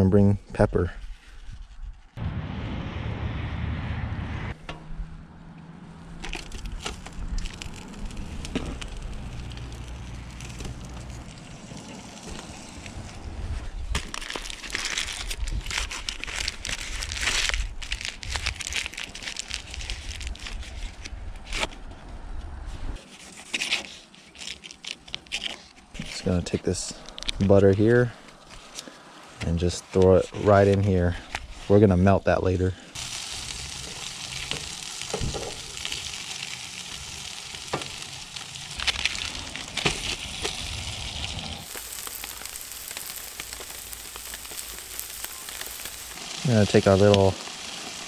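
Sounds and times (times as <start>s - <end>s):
aluminium foil crinkling: 6.1s - 13.0s, 13.9s - 21.7s, 23.0s - 26.2s, 33.0s - 48.0s.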